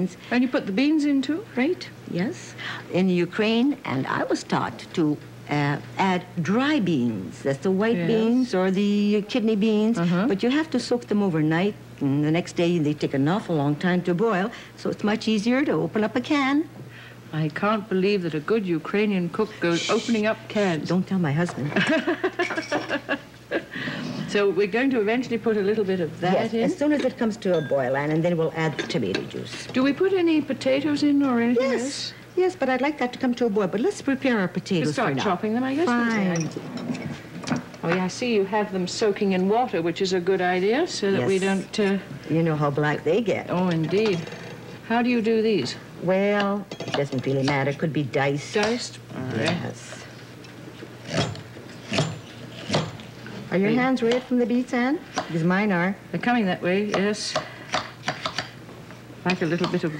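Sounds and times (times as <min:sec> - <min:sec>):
women speaking: 0:00.0 - 0:22.0, 0:24.2 - 0:36.6, 0:37.8 - 0:50.1, 0:53.4 - 0:57.5, 0:59.2 - 0:59.9
low steady hum: 0:00.0 - 0:59.9
women laughing: 0:21.7 - 0:24.0.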